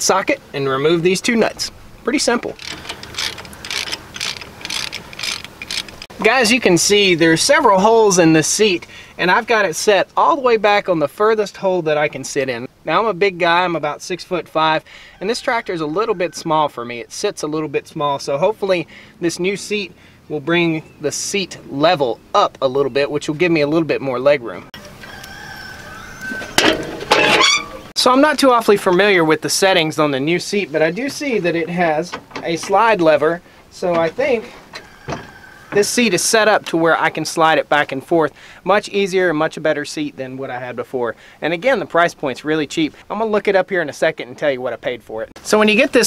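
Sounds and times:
ratchet wrench clicking: 2.6s - 6.1s
chicken calling: 3.0s - 5.3s, 24.8s - 27.9s, 34.6s - 35.9s.

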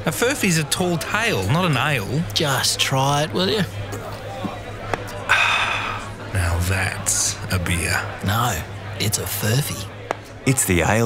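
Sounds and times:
man sighing ahh: 5.3s - 6.1s.

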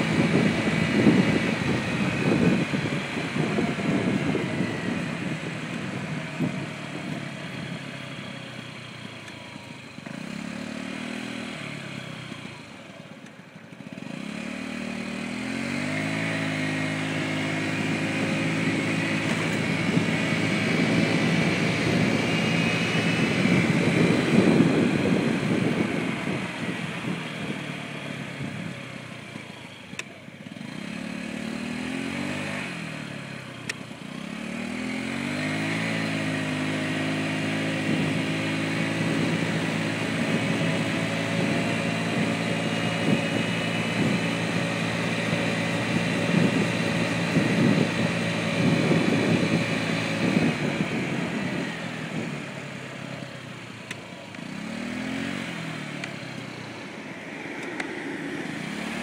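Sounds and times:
wind buffeting microphone: 0.0s - 7.9s, 15.5s - 28.9s, 34.6s - 52.8s
scooter engine running: 0.0s - 59.0s.

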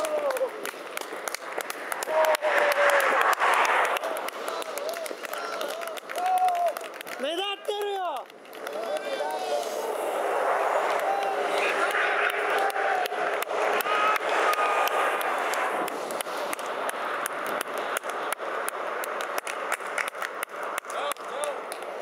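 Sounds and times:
roadside din: 0.0s - 22.0s
indistinct voices: 1.9s - 16.8s.

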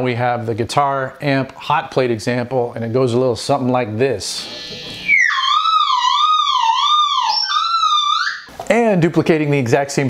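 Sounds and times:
guitar pickups squealing: 4.2s - 8.5s.

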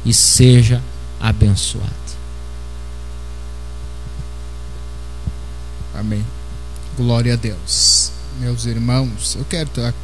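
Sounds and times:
electrical mains hum: 0.0s - 10.0s
microphone knock: 5.2s - 6.0s.

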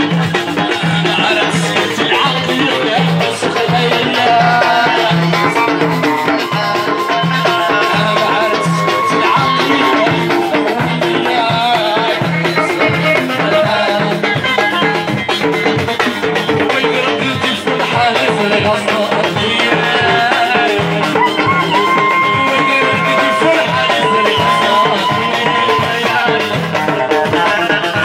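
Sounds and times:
banjo and electric guitar: 0.0s - 28.0s
clay and frame drums beat: 0.0s - 28.0s.

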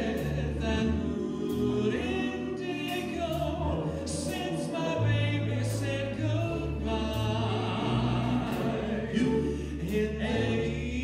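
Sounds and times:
jazz big band: 0.0s - 11.0s
vocal group singing in harmony: 0.0s - 11.0s.

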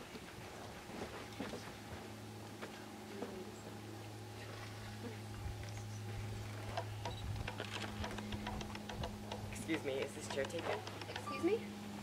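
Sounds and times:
low steady hum: 0.0s - 12.0s
light clicks and taps: 6.8s - 11.3s.

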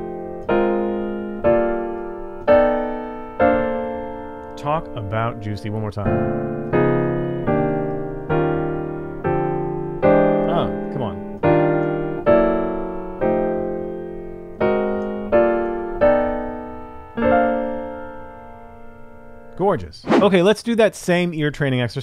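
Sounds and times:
digital piano chords: 0.0s - 20.3s.

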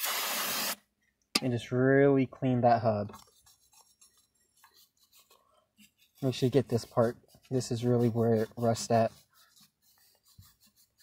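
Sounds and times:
small brush scrubbing rusty metal: 3.1s - 11.0s.

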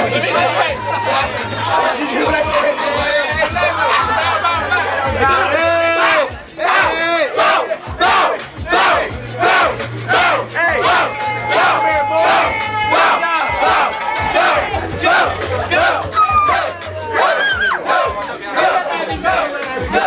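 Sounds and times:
group of voices chanting: 0.0s - 20.0s
hip-hop beat with bass line: 0.0s - 20.0s.

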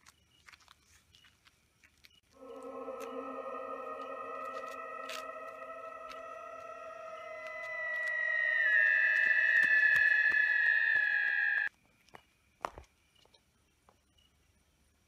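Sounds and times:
eerie electronic drone: 2.3s - 11.7s.

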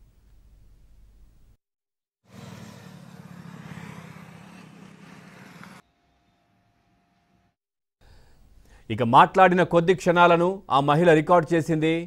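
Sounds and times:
vehicle engine rumble: 2.3s - 5.8s.

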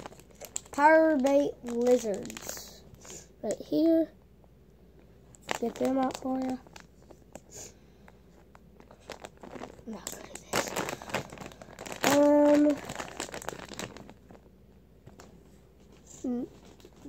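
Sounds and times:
plastic package crinkling and tearing: 0.0s - 3.3s, 5.3s - 7.6s, 8.4s - 14.5s
boy humming: 16.1s - 16.6s.

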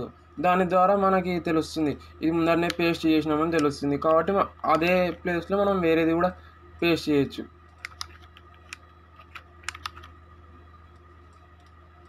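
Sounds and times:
faint steady hum: 0.0s - 12.0s
keyboard and mouse clicks: 7.7s - 10.2s, 10.9s - 12.0s.

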